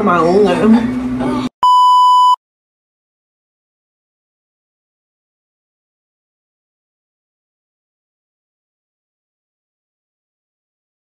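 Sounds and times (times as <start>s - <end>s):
electronic beep tone: 1.6s - 2.4s.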